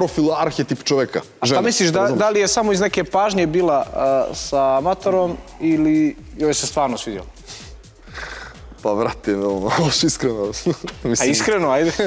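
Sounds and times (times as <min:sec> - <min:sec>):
studio background noise: 0:00.0 - 0:12.0
man laughing: 0:10.5 - 0:12.0.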